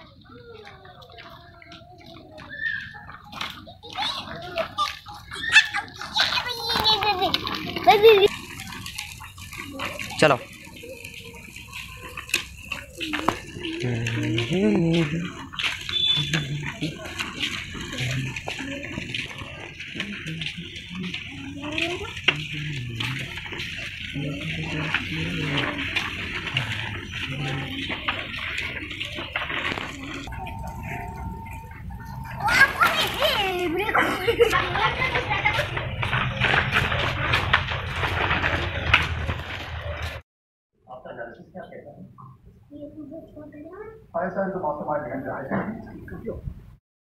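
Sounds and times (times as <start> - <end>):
indistinct talking: 0.0 - 37.6
burst of voices and movement: 0.0 - 40.2.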